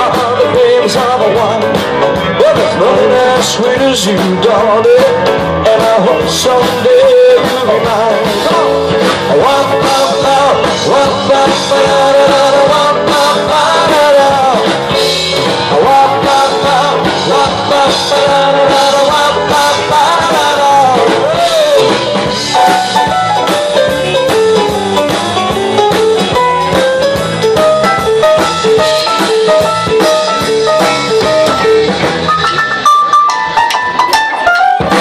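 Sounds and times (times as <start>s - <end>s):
electric guitar lead: 0.0s - 35.0s
rock band playing: 0.0s - 35.0s.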